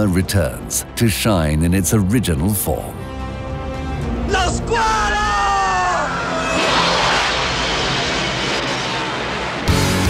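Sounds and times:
loud rushing roar: 0:06.0 - 0:10.0.

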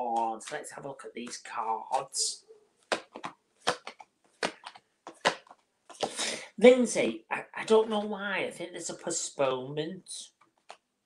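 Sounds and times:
playing cards snapping and tapping: 0:00.1 - 0:02.2, 0:02.9 - 0:06.2.

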